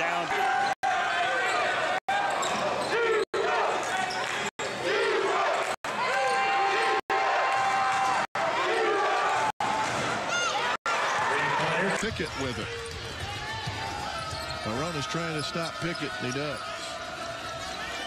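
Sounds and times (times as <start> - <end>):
voices across arena: 0.0 - 18.0.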